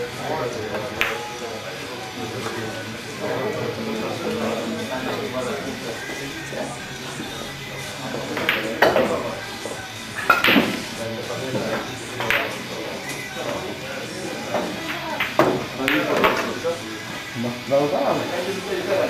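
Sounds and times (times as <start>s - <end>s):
background music: 0.0s - 19.0s
indistinct background chatter: 0.0s - 19.0s
pool balls clicking: 0.5s - 2.8s, 3.8s - 17.3s.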